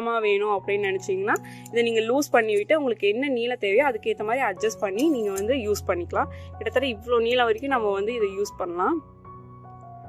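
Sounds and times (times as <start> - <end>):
background music with sustained tones: 0.0 - 10.0
person speaking: 4.0 - 8.4.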